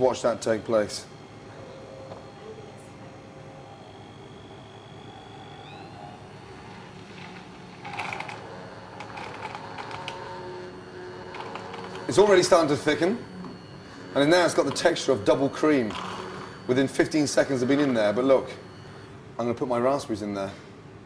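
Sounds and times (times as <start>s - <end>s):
immersion blender frothing milk: 11.1s - 12.2s, 14.3s - 16.6s.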